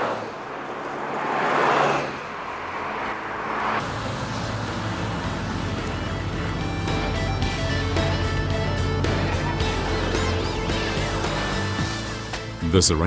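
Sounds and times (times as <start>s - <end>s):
road vehicles driving past: 0.0s - 12.4s
background music: 3.9s - 13.0s.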